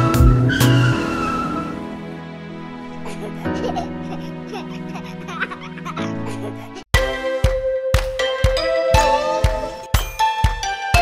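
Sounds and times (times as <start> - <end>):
cartoon baby giggling: 3.0 - 6.9
tune with sharp beats: 7.0 - 11.0
upbeat children's music: 7.0 - 11.0.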